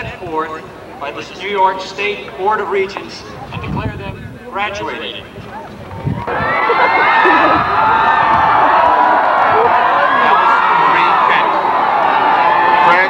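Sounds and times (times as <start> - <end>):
crowd cheering and screaming: 6.0 - 13.0.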